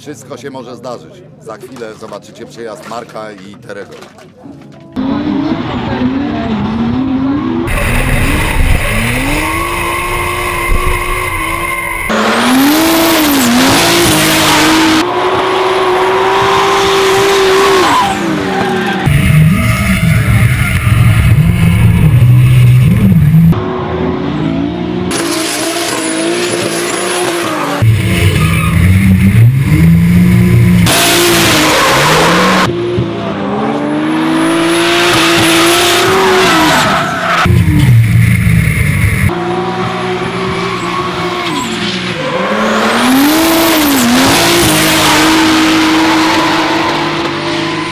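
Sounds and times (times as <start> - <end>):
car engines revving: 4.9 - 47.9.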